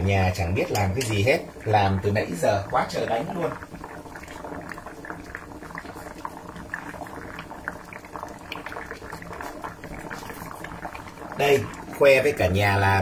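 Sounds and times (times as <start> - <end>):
pots boiling and bubbling: 0.0 - 13.0.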